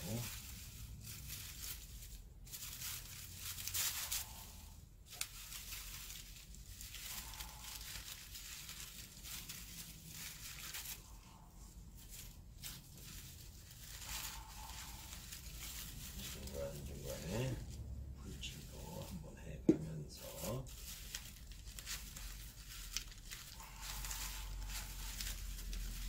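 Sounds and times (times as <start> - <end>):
paper rustling and crinkling: 0.0 - 26.0.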